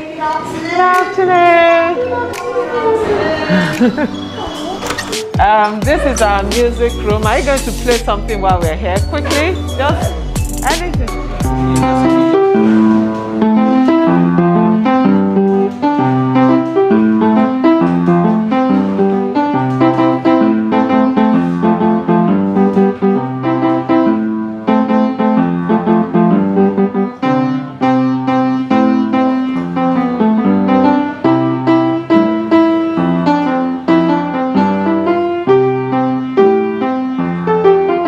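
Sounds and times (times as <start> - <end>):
piano piece: 0.0 - 38.0.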